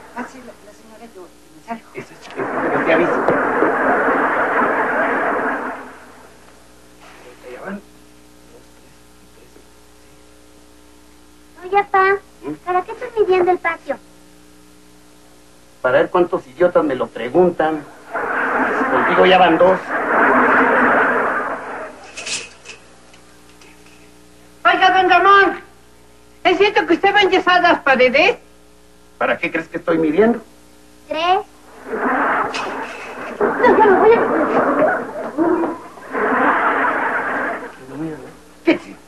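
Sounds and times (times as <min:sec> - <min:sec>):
faint crackles: 0:01.7 - 0:11.5, 0:16.8 - 0:24.6, 0:30.8 - 0:39.0
dense noisy voice-like sound: 0:02.0 - 0:06.4, 0:31.2 - 0:39.0
studio audience laughter: 0:18.6 - 0:22.0, 0:31.8 - 0:37.8.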